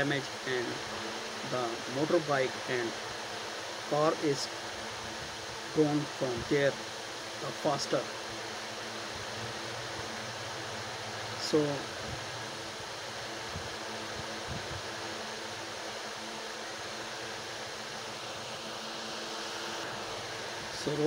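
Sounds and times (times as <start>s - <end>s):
fan running: 0.0s - 21.0s.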